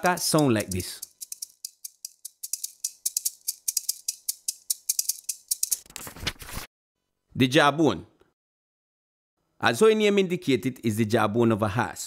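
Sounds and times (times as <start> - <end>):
maracas shaking: 0.0 - 5.9.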